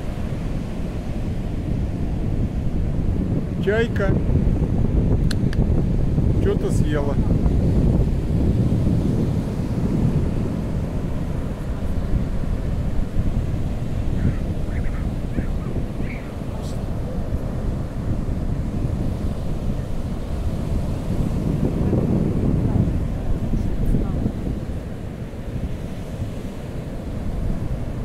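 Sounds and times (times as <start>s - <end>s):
ocean surf breaking: 0.0s - 28.0s
wind buffeting microphone: 0.0s - 28.0s.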